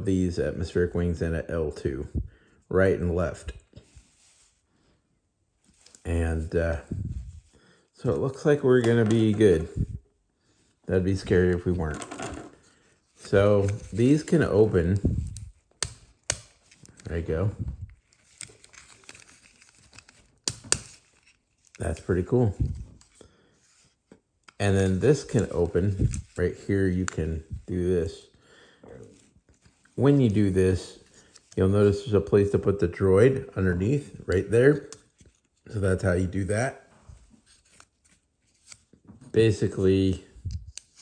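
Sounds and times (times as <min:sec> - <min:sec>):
plastic toy rustling in fingers: 0:05.6 - 0:07.6, 0:11.2 - 0:24.3, 0:25.0 - 0:27.9, 0:29.0 - 0:32.0, 0:37.0 - 0:39.0.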